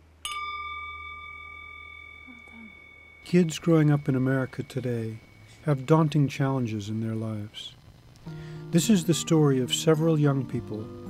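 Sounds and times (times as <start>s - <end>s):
metal singing bowl ringing: 0.2s - 7.6s.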